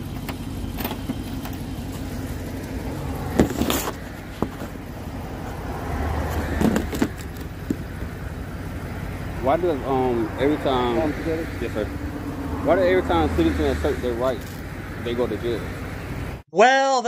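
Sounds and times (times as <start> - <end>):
vehicle engine hum: 0.0 - 16.5
phone handling knocks and rustles: 6.5 - 7.9.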